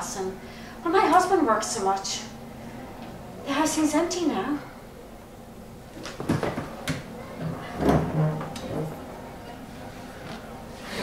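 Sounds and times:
wooden chair knocking and shifting: 0:06.0 - 0:09.0.

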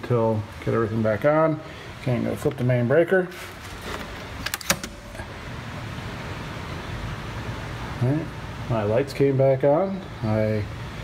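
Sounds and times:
air conditioner humming: 0:00.0 - 0:11.0.

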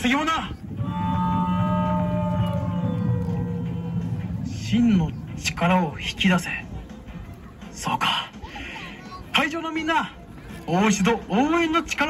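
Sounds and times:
steady low drone: 0:00.0 - 0:07.8.

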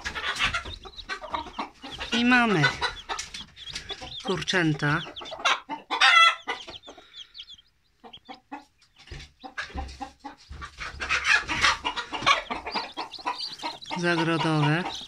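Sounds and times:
chicks peeping: 0:00.0 - 0:15.0.

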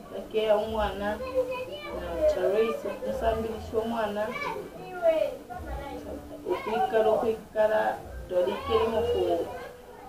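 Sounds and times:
woman talking: 0:00.0 - 0:01.2, 0:02.0 - 0:04.4, 0:06.4 - 0:09.6.

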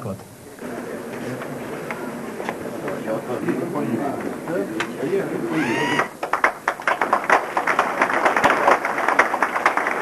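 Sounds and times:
crowd applauding: 0:05.5 - 0:10.0.

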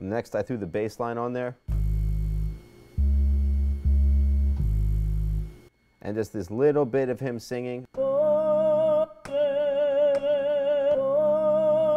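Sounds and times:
deep electronic bass notes: 0:01.7 - 0:05.7.

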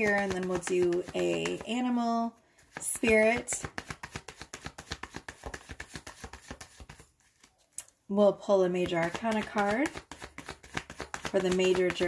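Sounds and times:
cards being shuffled: 0:00.0 - 0:01.9, 0:02.6 - 0:08.0, 0:08.8 - 0:12.0.

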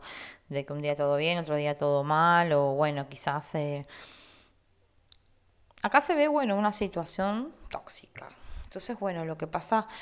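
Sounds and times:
breath: 0:00.0 - 0:00.5, 0:03.9 - 0:04.6
woman speaking: 0:00.5 - 0:03.9, 0:05.8 - 0:10.0.

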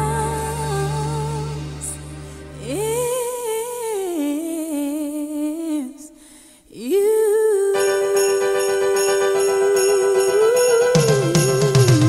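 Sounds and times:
person singing wordless line: 0:00.0 - 0:12.0.

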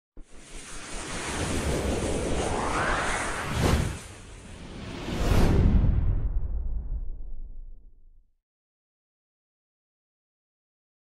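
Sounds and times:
whooshing swell: 0:00.2 - 0:07.3.

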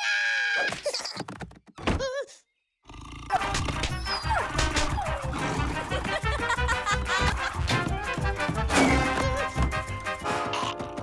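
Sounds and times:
cartoon knocks and thunks: 0:00.8 - 0:02.1
fast-paced chase music: 0:03.4 - 0:11.0.

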